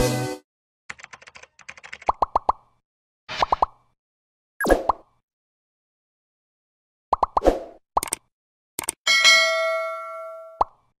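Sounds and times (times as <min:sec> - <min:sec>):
clicks: 0:08.0 - 0:09.0
bright ringing chime: 0:09.1 - 0:10.6.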